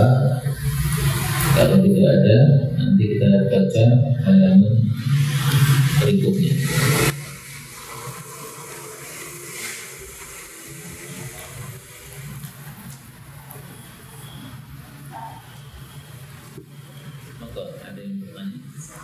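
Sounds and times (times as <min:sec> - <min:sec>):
man's voice: 0:00.0 - 0:00.5, 0:01.6 - 0:05.0, 0:05.9 - 0:07.1.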